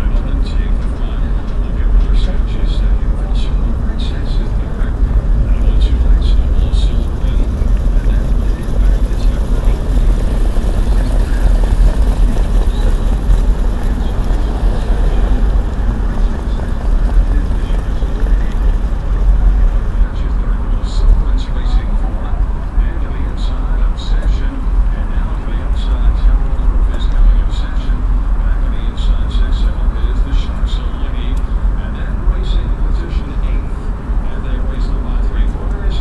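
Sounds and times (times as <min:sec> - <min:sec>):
car engine and road rumble: 0:00.0 - 0:36.0.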